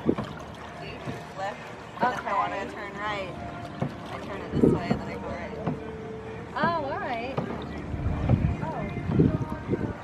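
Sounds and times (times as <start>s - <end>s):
wind buffeting microphone: 7.9s - 10.0s.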